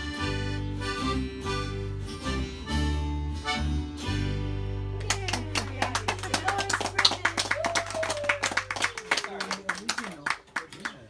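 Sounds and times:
accordion and guitars: 0:00.0 - 0:06.8
people clapping: 0:05.0 - 0:11.0.

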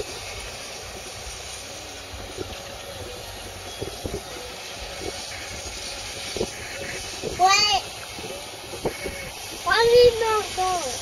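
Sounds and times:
distant tractor and baler running: 0:00.0 - 0:11.0.

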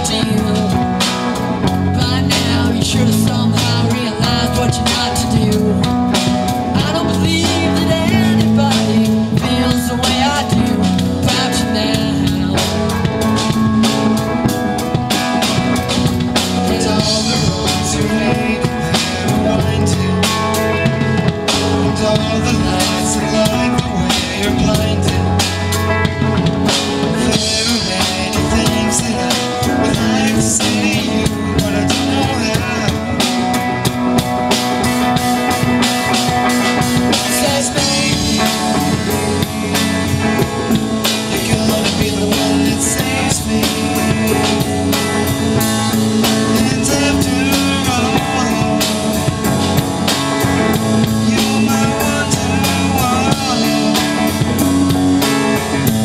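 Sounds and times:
drum kit beat: 0:00.0 - 0:56.0
electric bass: 0:00.0 - 0:56.0
electric guitar: 0:00.0 - 0:56.0.

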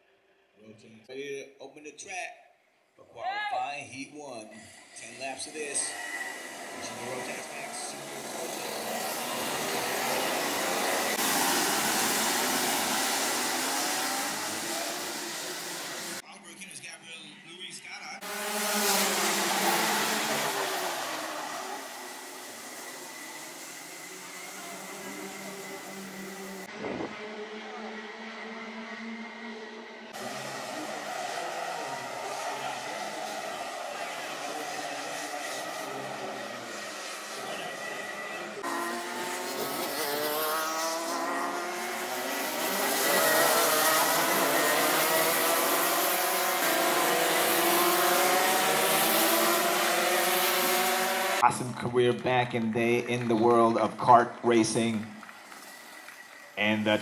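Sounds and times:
racing kart engines: 0:03.2 - 0:57.0.

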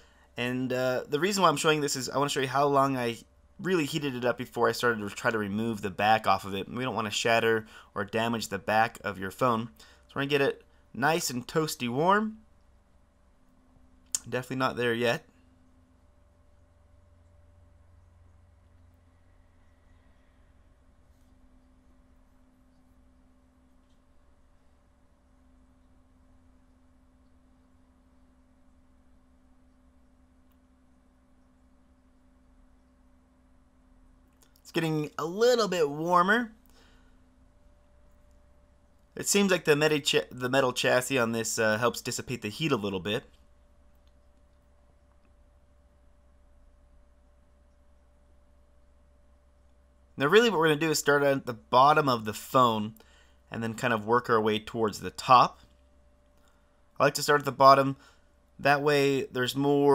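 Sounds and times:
faint steady hum: 0:00.0 - 0:59.9
thin steady tone: 0:00.0 - 0:59.9.

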